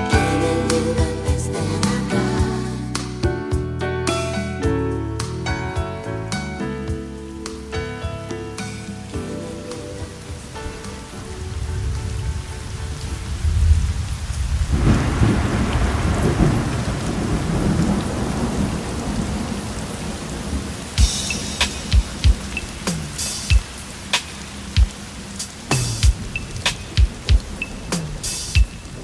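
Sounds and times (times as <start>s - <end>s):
steady rain: 0.0s - 3.2s, 5.6s - 29.0s
song: 0.0s - 12.8s
rolling thunder: 10.3s - 25.0s.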